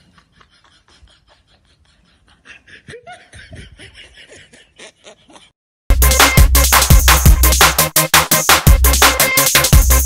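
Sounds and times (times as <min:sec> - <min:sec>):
people laughing quietly: 0:00.0 - 0:05.5.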